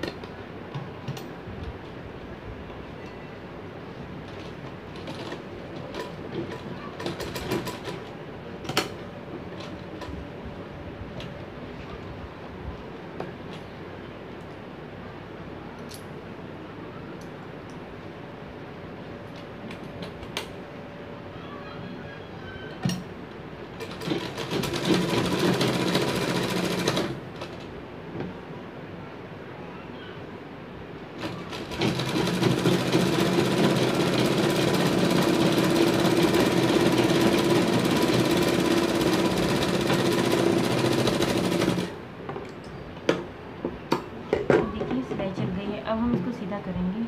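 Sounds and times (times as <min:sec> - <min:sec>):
sewing machine clicking: 0:23.8 - 0:27.6, 0:31.2 - 0:42.0.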